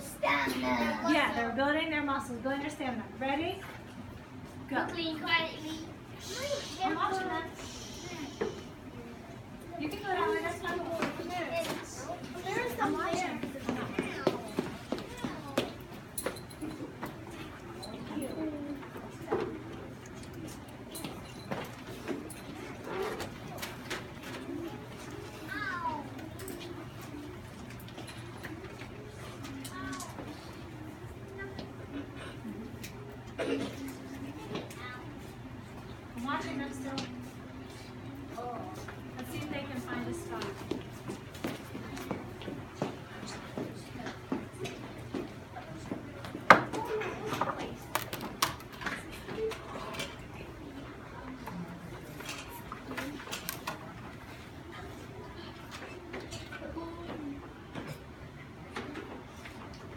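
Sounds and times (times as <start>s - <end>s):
murmur of children's voices: 0.0s - 59.9s.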